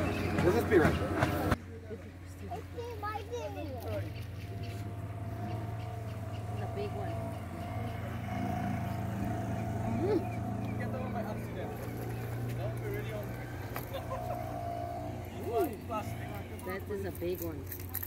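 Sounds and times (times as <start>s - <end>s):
engine running: 0.0s - 18.0s
voice-like calls: 4.0s - 17.3s.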